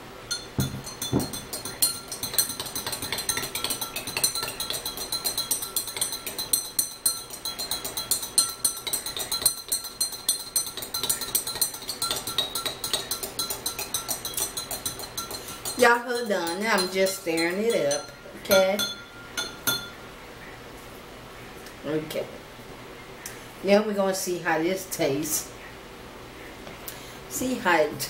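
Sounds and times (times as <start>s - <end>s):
spoon clinking against glass: 0.3s - 20.0s.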